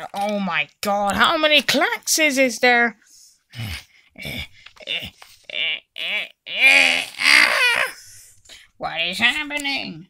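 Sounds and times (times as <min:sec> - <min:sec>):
high voice squealing and wailing: 0:06.0 - 0:08.1.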